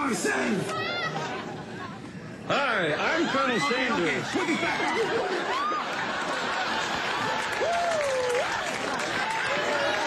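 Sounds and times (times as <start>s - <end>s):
crowd clapping and cheering: 4.9s - 10.0s.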